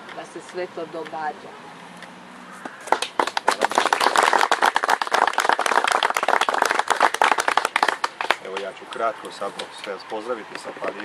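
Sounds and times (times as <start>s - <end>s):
audience applauding: 2.8s - 9.1s.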